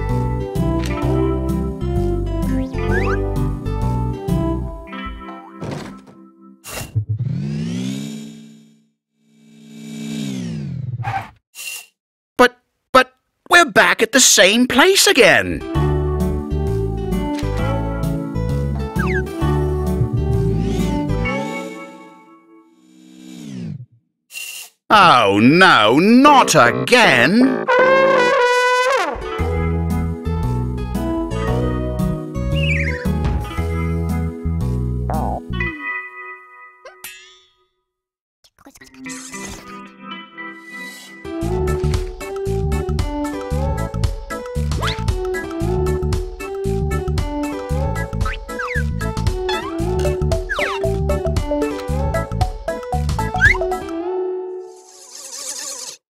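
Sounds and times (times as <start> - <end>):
cartoon car engine revving: 7.0 - 8.8, 9.6 - 11.3, 25.8 - 29.3
trumpet note sliding down: 26.4 - 29.3
low brass music: 26.4 - 30.0
short music cue: 50.0 - 53.9.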